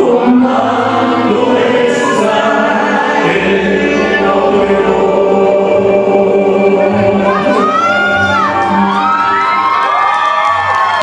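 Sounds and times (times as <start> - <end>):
audience cheering and screaming: 7.2 - 11.0.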